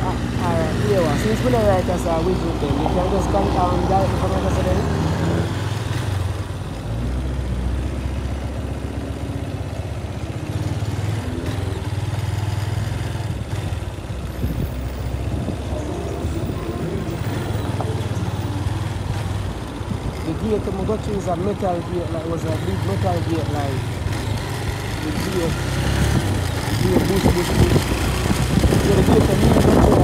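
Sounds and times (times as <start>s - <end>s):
motorcycle engine running: 0.0s - 30.0s.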